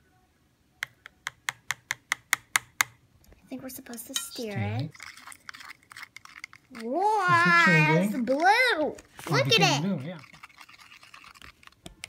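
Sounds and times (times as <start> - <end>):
plastic stir stick in cup: 3.9 - 12.0.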